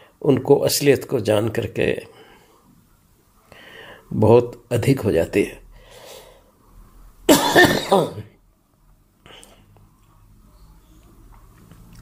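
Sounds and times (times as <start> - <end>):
man clearing throat cough: 7.3 - 8.3.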